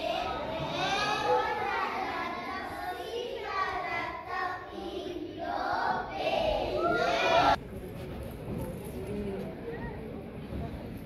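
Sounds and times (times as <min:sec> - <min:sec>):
children chanting in unison: 0:00.0 - 0:07.6.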